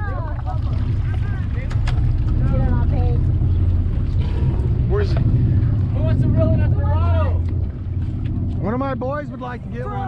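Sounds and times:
people talking: 0.0s - 3.3s
boat engine droning: 0.0s - 10.0s.

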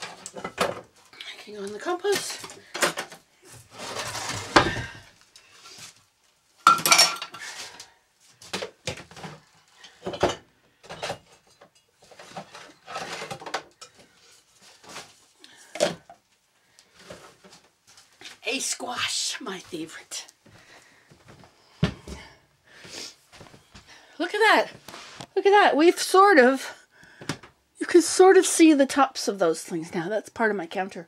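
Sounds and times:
dishes and utensils clattering: 6.6s - 7.5s, 9.1s - 14.1s.

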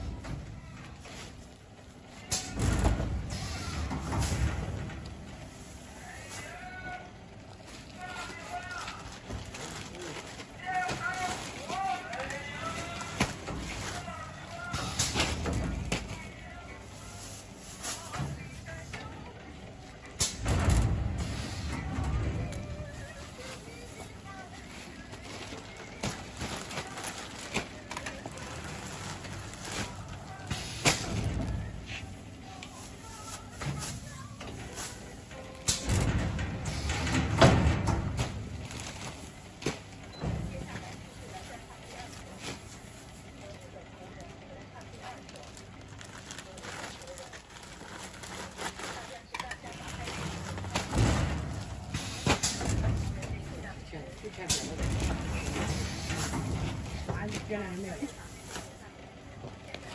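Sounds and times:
plastic bags rustling: 0.0s - 20.0s, 21.2s - 59.9s.

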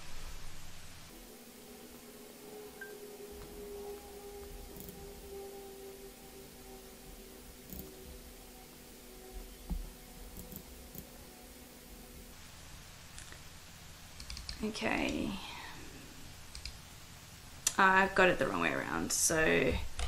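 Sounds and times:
faint hum of held tones: 0.7s - 20.0s.

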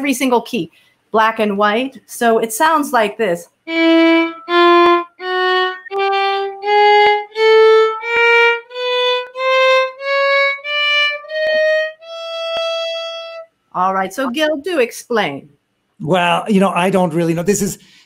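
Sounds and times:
violin playing ascending scale: 3.6s - 13.5s.

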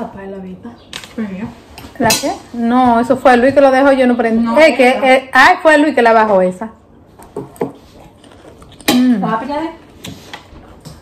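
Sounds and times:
soft chewing: 7.2s - 8.9s.

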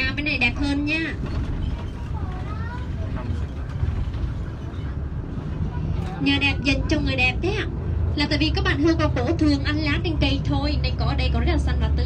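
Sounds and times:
faint passenger voices: 0.0s - 12.0s
low rumble of engine and road: 0.0s - 12.0s.

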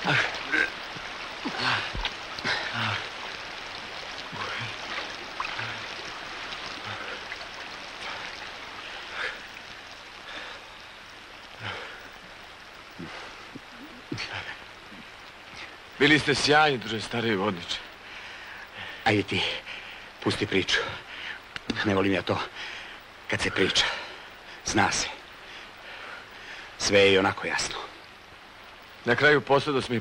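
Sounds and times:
river water rushing: 0.0s - 29.2s.

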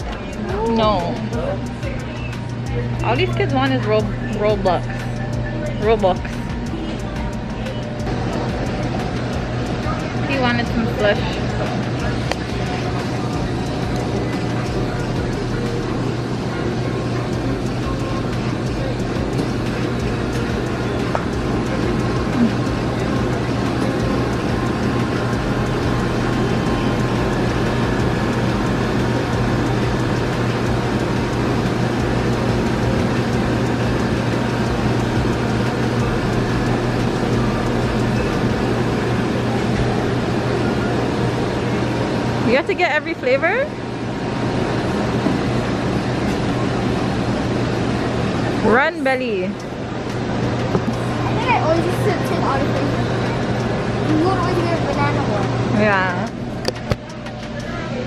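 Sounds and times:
refrigeration hum and whoosh: 0.0s - 58.0s.

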